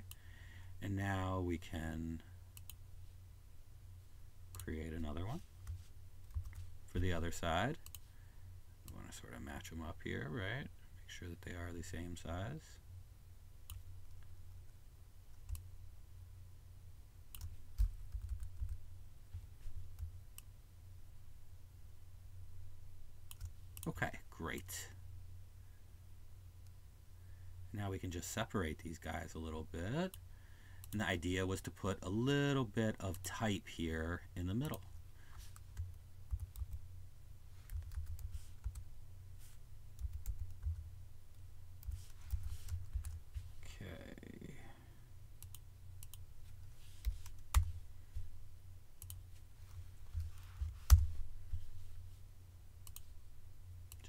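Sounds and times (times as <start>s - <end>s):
steady low hum: 0.0s - 54.0s
computer mouse clicks: 7.8s - 8.0s, 45.4s - 46.2s, 49.0s - 49.2s, 52.8s - 53.1s
computer keyboard typing: 17.4s - 18.8s, 35.8s - 36.8s, 37.6s - 38.9s, 40.0s - 40.8s.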